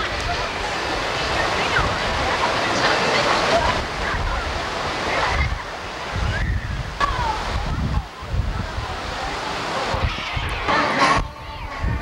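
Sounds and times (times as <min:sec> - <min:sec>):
faint distant voices: 0:00.0 - 0:12.0
water rushing and splashing: 0:00.0 - 0:12.0
wind buffeting microphone: 0:00.0 - 0:12.0.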